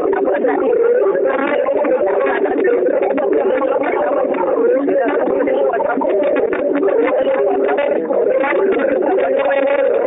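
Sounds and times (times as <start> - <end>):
muffled voices over phone line: 0.0 - 10.0.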